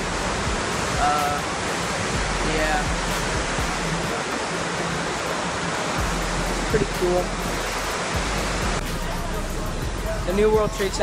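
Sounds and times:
soft outdoor noise: 0.0 - 11.0
waterfall rushing: 0.0 - 11.0.

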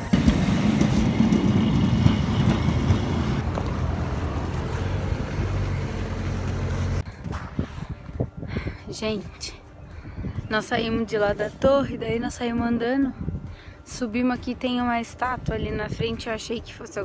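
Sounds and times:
passing traffic rumble: 0.0 - 8.2.

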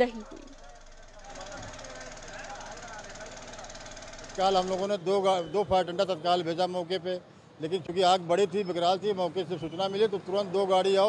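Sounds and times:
faint indistinct voices: 0.0 - 6.1
steady background noise: 0.0 - 11.0.

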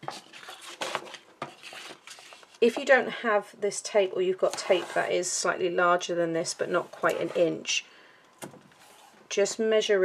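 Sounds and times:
paper and tape rustling: 0.0 - 2.7.

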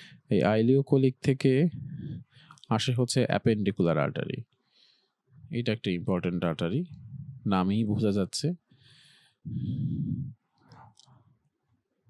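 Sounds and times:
faint intake of breath: 8.7 - 9.8.

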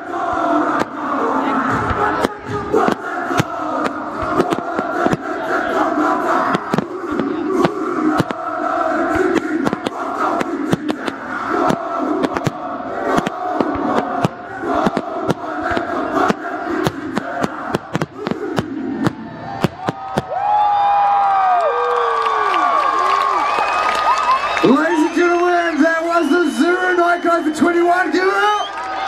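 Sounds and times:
fireworks bangs and crackles: 0.0 - 20.8
crowd cheering and shouting: 0.0 - 29.0.

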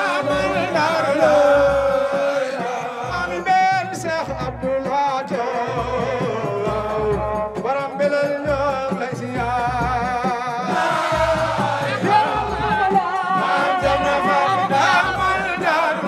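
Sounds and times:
men singing along: 0.0 - 16.0.

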